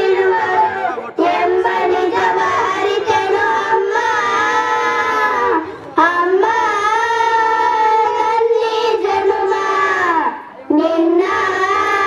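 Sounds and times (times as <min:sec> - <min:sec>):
children singing into microphones: 0:00.0 - 0:12.0.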